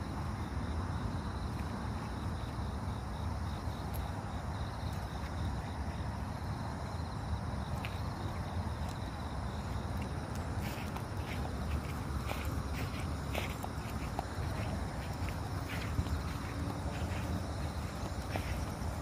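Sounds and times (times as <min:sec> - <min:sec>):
low outdoor rumble: 0:00.0 - 0:19.0
footsteps on dirt path: 0:08.8 - 0:19.0.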